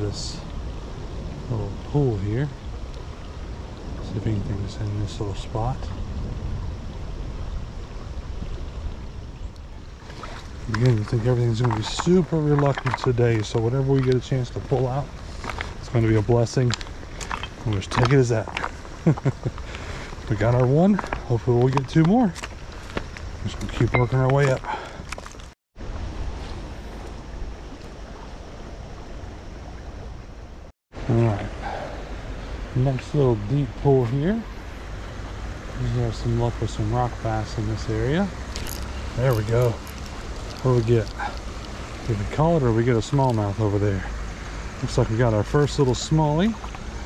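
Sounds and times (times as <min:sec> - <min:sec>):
creek running over rocks: 0:00.0 - 0:30.2, 0:30.9 - 0:47.0
wind rumble on microphone: 0:00.0 - 0:47.0.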